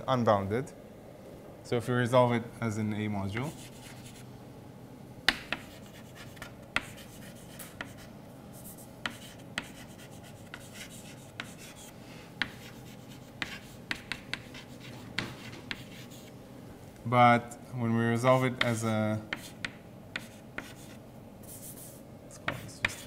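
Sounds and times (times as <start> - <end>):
chalk tapping and scratching on blackboard: 3.4 - 4.2, 5.3 - 16.4, 18.3 - 23.0.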